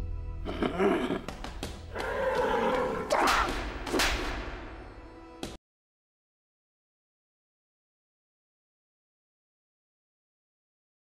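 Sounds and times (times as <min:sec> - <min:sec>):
comic slap: 0:01.2 - 0:05.6.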